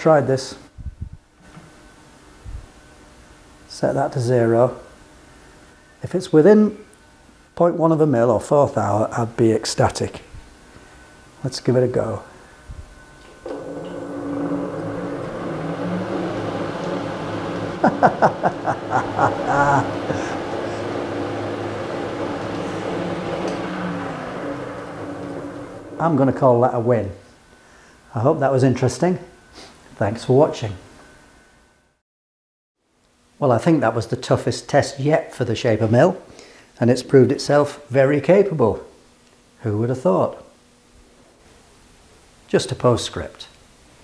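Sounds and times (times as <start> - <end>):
faint steady hum: 10.6 - 29.5.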